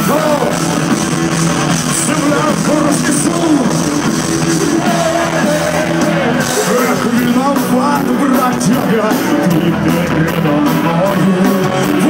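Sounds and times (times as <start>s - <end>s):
drums: 0.0s - 12.0s
electric guitar: 0.0s - 12.0s
person singing: 4.7s - 12.0s.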